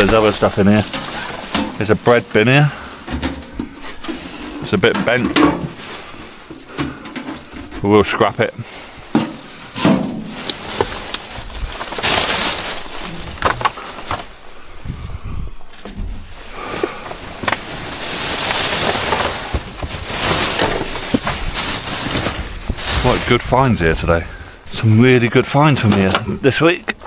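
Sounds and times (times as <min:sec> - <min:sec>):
items knocking and clattering: 0:00.0 - 0:14.4, 0:15.6 - 0:24.7, 0:25.7 - 0:27.0
plastic bags rustling: 0:00.0 - 0:27.0.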